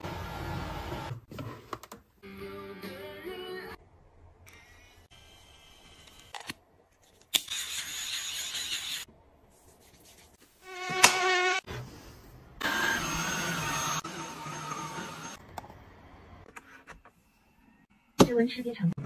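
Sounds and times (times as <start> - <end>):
small electric motors whirring: 7.3 - 9.1.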